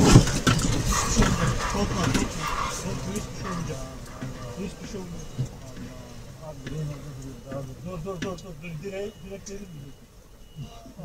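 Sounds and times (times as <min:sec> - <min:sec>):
low rumble: 0:00.0 - 0:10.0
people calling out: 0:00.0 - 0:11.0.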